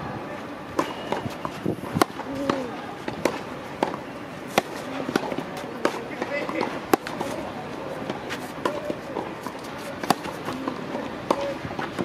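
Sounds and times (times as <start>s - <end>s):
tennis ball bouncing on clay: 0.8s - 12.0s
tennis ball struck with rackets: 0.8s - 12.0s.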